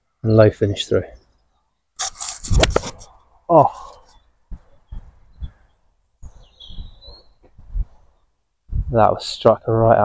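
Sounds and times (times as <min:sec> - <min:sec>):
bird chirp: 0:00.8 - 0:02.0, 0:03.1 - 0:08.4.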